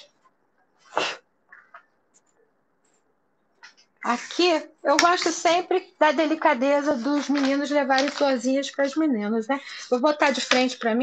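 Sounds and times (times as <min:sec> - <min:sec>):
faint small sounds: 0:00.0 - 0:09.1.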